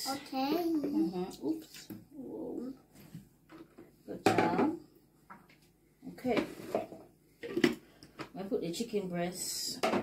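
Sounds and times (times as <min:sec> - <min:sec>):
kitchen items knocking: 0:03.5 - 0:04.8, 0:09.7 - 0:10.0.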